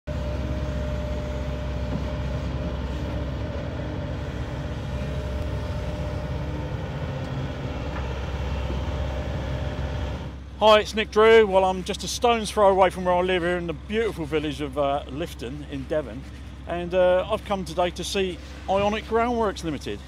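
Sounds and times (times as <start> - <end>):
excavator diesel engine running: 0.1 - 20.0
faint steady whine: 0.1 - 20.0.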